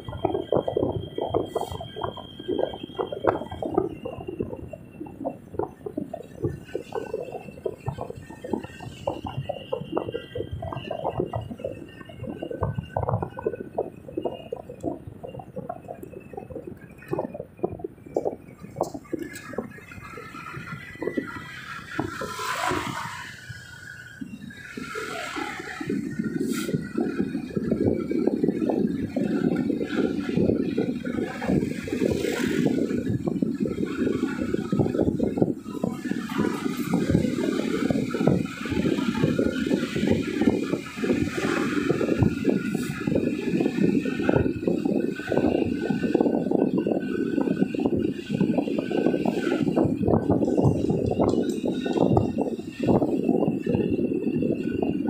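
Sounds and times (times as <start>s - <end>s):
car road and wind noise: 0.0s - 55.0s.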